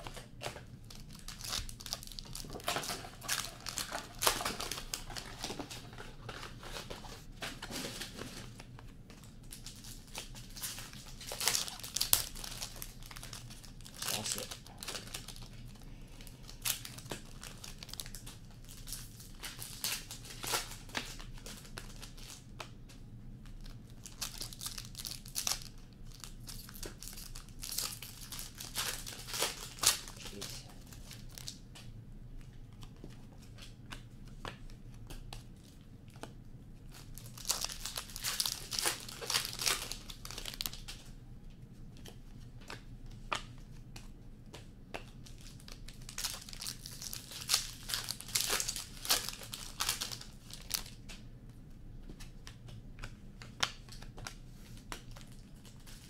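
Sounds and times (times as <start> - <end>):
foil wrappers crinkling and tearing: 0.0 - 22.5, 23.4 - 31.6, 35.3 - 41.1, 45.0 - 51.1, 52.2 - 56.0.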